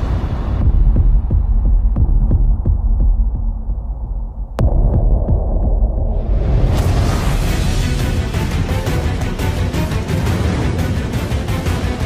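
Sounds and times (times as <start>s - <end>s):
deep rumble: 0.0s - 12.0s
low throbbing pulse: 0.0s - 12.0s.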